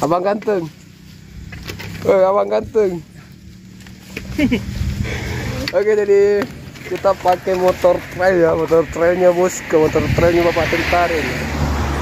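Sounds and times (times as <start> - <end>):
motorcycle engine idling: 0.0 - 9.9
person speaking: 4.1 - 11.5.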